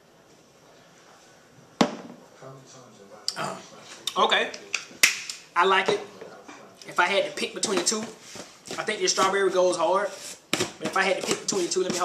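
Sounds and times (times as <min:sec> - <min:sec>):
plastic bottle knocking on counter: 0:01.8 - 0:02.2.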